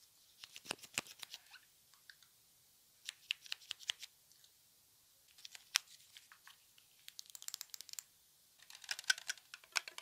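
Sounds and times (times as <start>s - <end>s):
small crisp clicks and crackles: 5.3s - 10.0s.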